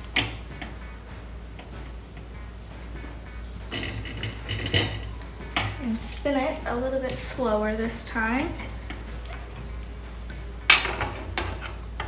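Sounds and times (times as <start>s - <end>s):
metallic rattling clanks: 0.0s - 6.0s
low steady background noise: 0.0s - 12.0s.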